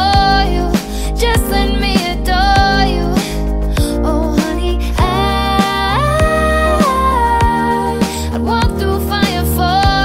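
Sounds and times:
deep kick drum: 0.0 - 8.8
pop song playing: 0.0 - 10.0.

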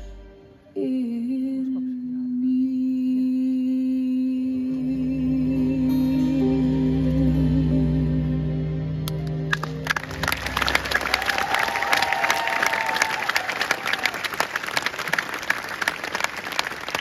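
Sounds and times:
sustained music chord: 4.6 - 11.6
audience clapping: 9.1 - 17.0
person cheering: 10.5 - 14.4.

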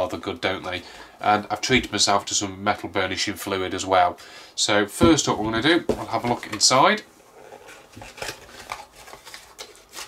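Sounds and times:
paper rustling: 7.7 - 10.0.

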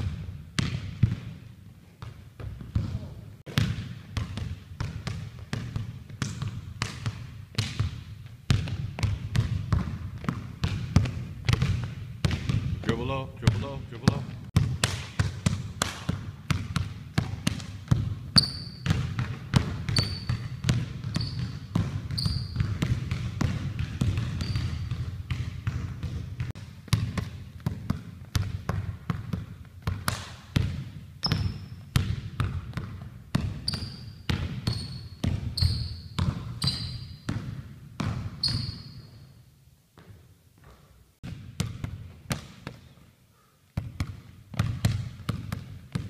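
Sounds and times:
basketball bouncing on wooden floor: 0.0 - 39.1, 40.0 - 43.0, 43.8 - 46.0
sneaker squeaks on floor: 18.3 - 19.0, 19.8 - 22.8, 24.2 - 25.0, 31.2 - 31.9, 33.6 - 37.3, 38.3 - 39.4.

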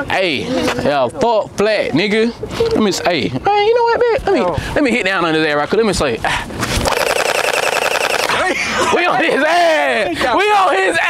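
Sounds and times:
gel blaster full-auto burst: 6.9 - 8.4.

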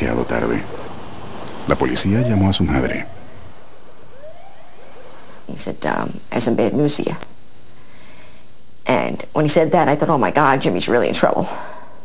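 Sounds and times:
street noise: 0.0 - 4.1
faint ambulance siren: 1.6 - 6.4.

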